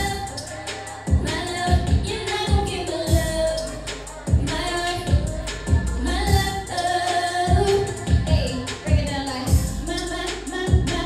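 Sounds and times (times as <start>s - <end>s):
woman singing r and b: 0.0s - 11.0s
heavy bass kicks: 1.1s - 6.7s, 7.5s - 11.0s.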